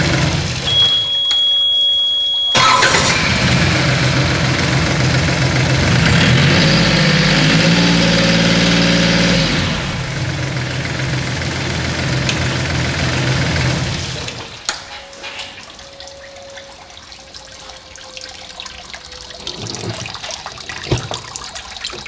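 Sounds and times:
diesel outboard engine idling: 0:00.0 - 0:01.1, 0:02.5 - 0:14.6
engine revving: 0:02.6 - 0:14.5.

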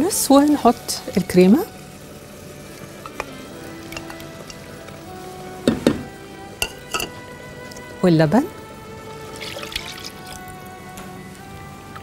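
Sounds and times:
soft background music: 0:00.0 - 0:12.0
milk pouring into saucepan: 0:09.1 - 0:10.6.

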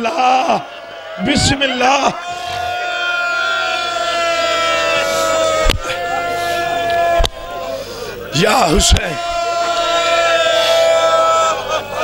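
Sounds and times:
microphone feedback howl: 0:01.2 - 0:01.8.

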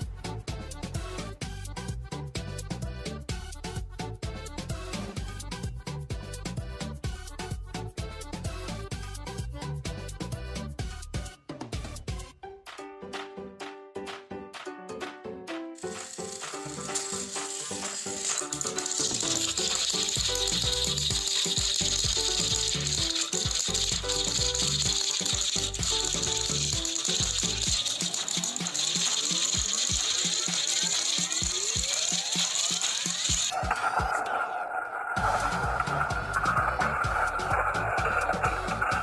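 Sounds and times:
background music: 0:00.0 - 0:39.0
toy train motors whirring: 0:15.8 - 0:34.4, 0:35.2 - 0:39.0.

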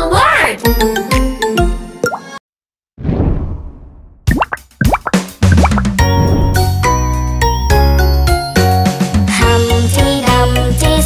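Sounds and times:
children's song music: 0:00.0 - 0:02.4, 0:05.5 - 0:11.0
rising plopping pops: 0:04.3 - 0:06.0.

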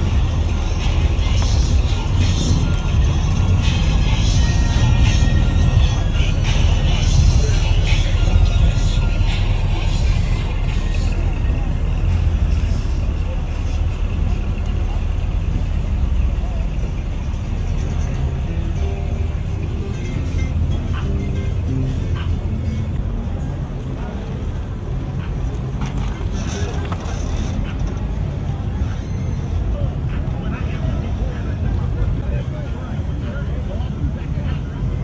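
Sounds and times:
music: 0:00.0 - 0:13.3, 0:17.3 - 0:27.8
cars driving slowly past: 0:00.0 - 0:35.0
voices: 0:00.0 - 0:35.0.

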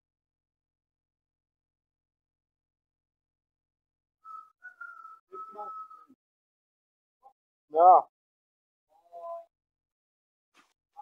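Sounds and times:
high steady whistling tone: 0:04.2 - 0:06.2.

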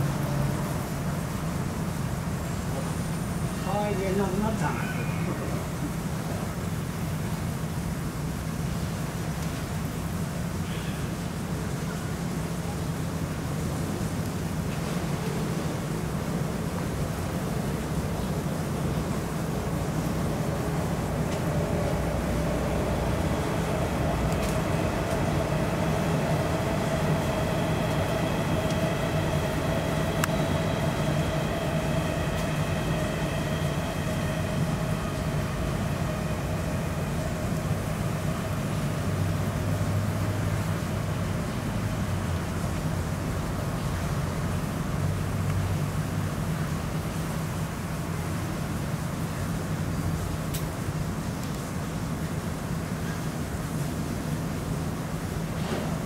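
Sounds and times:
rain falling on pool water: 0:00.0 - 0:56.0
low hum: 0:18.5 - 0:42.0
distant passing vehicle drone: 0:19.6 - 0:40.9.

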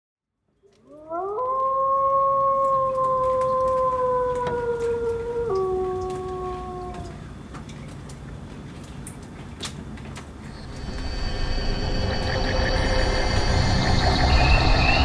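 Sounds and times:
long howl-like tone: 0:00.9 - 0:07.4, 0:10.4 - 0:15.0.

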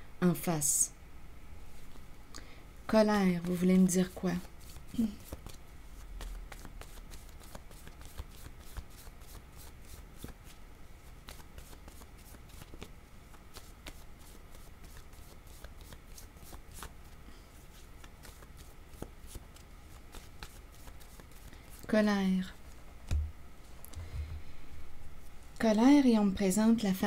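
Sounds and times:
cards shuffled by hand: 0:03.4 - 0:23.3.

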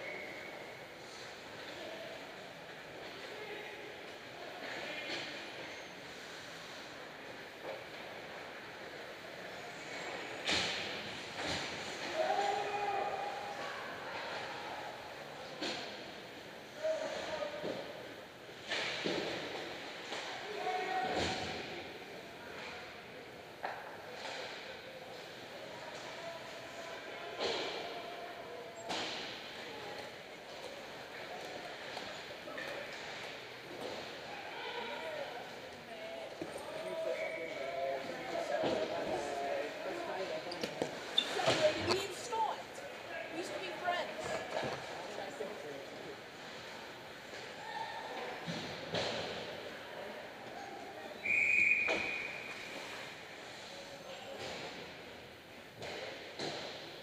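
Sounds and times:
players calling out in ice rink: 0:00.0 - 0:55.3.

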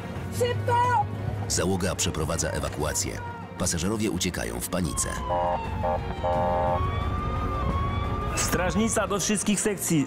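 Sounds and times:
emergency vehicle siren wailing: 0:04.7 - 0:09.0
buzzy siren tone: 0:05.2 - 0:06.9.

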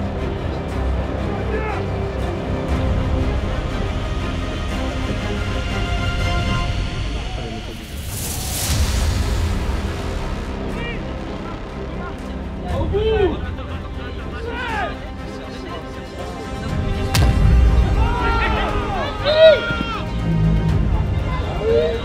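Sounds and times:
background music: 0:00.0 - 0:22.0
players shouting: 0:01.2 - 0:02.0, 0:17.2 - 0:20.4
rushing noise: 0:06.4 - 0:12.6.

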